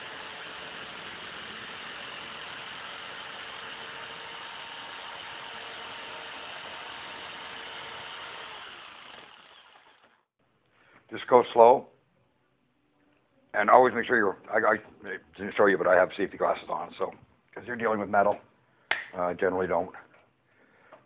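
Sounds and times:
motor winding down: 0.0s - 10.3s
power tool cutting steel rod: 0.0s - 10.3s.

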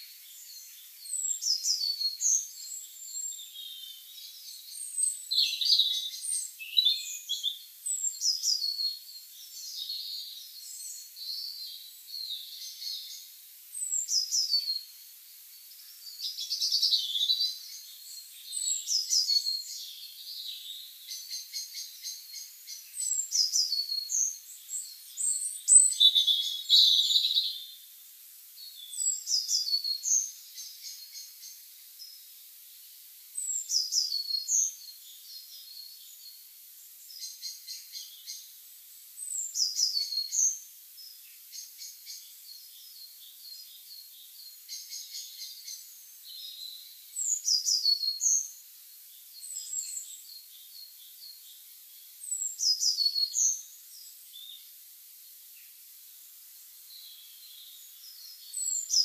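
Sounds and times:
soft bird chirps: 0.0s - 59.0s
songbirds singing: 0.0s - 59.0s.

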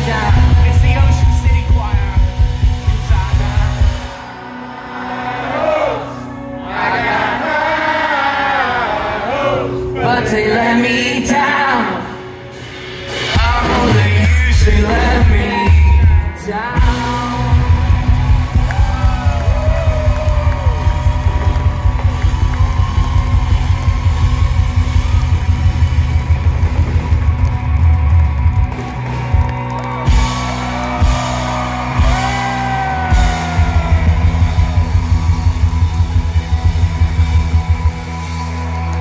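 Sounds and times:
live rock band playing: 0.0s - 39.0s.

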